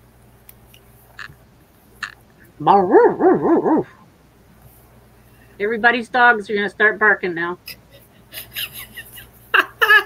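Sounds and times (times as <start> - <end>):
dog barking: 2.9 - 4.0.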